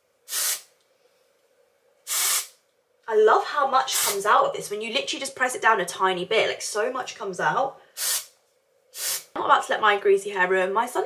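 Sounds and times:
aerosol spray hiss: 0.3s - 0.7s, 2.1s - 2.6s, 3.9s - 4.2s, 8.0s - 8.3s, 8.9s - 9.3s.

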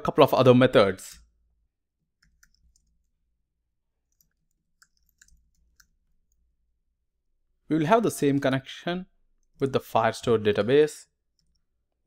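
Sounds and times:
computer keyboard keystrokes: 2.2s - 3.1s, 4.1s - 6.4s.

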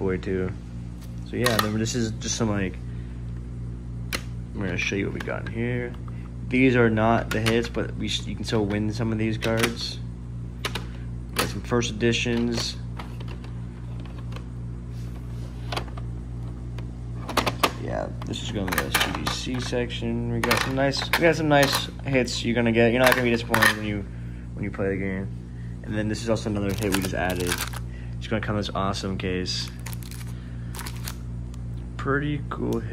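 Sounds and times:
steady low hum: 0.0s - 32.9s
plastic cases clicking together: 23.0s - 23.8s, 26.6s - 27.8s, 29.7s - 31.2s
plastic sleeve rustle: 26.6s - 27.8s, 29.6s - 31.2s.

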